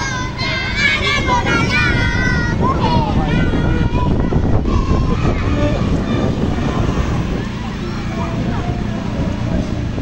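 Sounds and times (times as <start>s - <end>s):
motorcycle engine rumbling: 0.0s - 10.0s
voices of crowd: 0.0s - 10.0s
wind on microphone: 0.0s - 10.0s.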